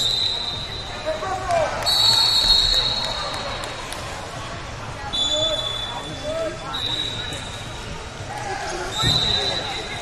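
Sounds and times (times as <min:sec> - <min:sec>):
referee whistle blasts: 0:00.0 - 0:01.2, 0:01.8 - 0:03.2, 0:05.1 - 0:07.5, 0:08.9 - 0:10.0
chatter of voices: 0:02.8 - 0:10.0.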